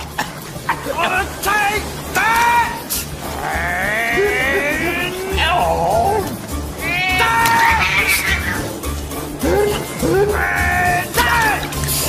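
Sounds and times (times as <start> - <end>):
background music: 0.0 - 12.0
wavering wail: 2.3 - 8.8, 9.4 - 11.7
cartoon character cries: 3.6 - 8.4, 9.6 - 11.6.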